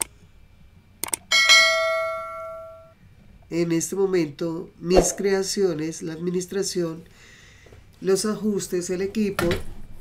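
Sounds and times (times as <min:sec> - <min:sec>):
quick clicks: 0:01.0 - 0:01.3
bell chime: 0:01.3 - 0:03.0.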